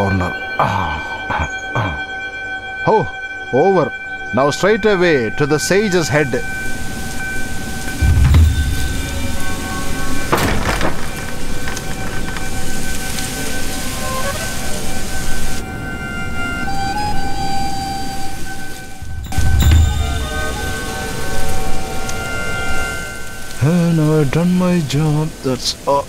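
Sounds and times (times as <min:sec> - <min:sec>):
sustained held tones: 0:00.0 - 0:10.4, 0:11.5 - 0:24.8
hissing rumbling texture: 0:06.2 - 0:15.7, 0:18.3 - 0:25.9
deep boom: 0:08.0 - 0:11.3, 0:19.0 - 0:22.1.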